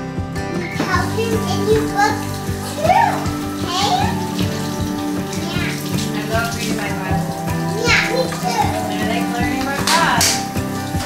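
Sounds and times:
background music: 0.0 - 11.0
young child talking: 0.7 - 4.2, 5.4 - 6.0, 7.7 - 9.0
faucet running into sink: 0.7 - 11.0.

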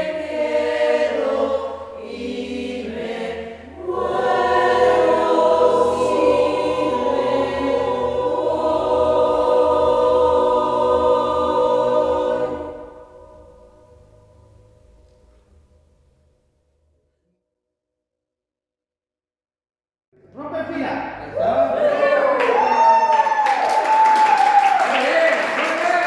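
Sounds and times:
mixed choir singing a cappella: 0.0 - 14.4.

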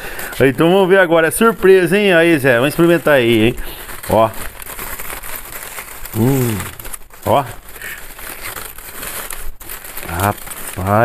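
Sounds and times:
foil and paper crinkling: 0.0 - 11.0.

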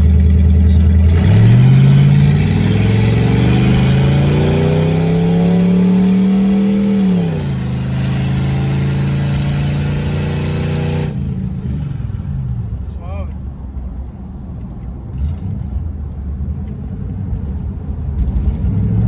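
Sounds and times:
engine accelerating: 0.0 - 12.7.

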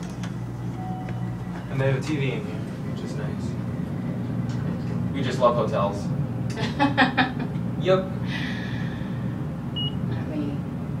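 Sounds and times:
elevator cab hum: 0.0 - 11.0.

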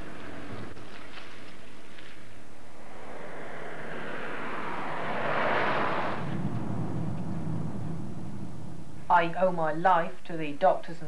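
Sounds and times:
van engine hum: 0.0 - 9.3.

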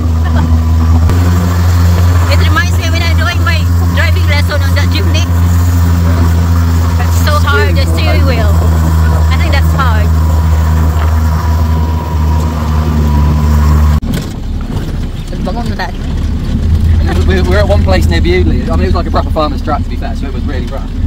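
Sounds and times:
jeep engine droning: 0.0 - 21.0.

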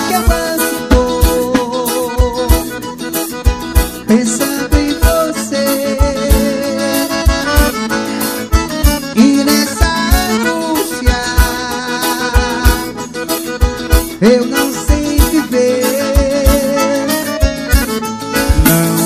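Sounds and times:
bass drum beat: 0.0 - 5.4, 13.6 - 19.0
accordion melody: 0.0 - 19.0.

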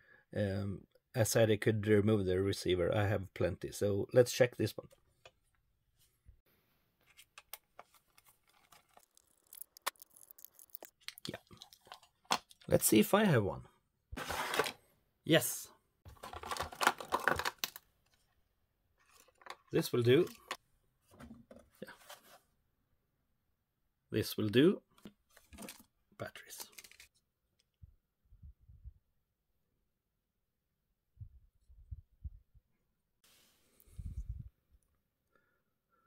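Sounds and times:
faint handling sounds: 4.9 - 12.7, 24.9 - 27.2.

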